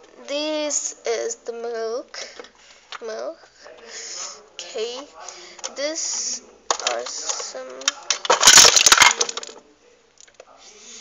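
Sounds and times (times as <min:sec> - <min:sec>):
small plastic toys clattering: 0:05.6 - 0:09.6.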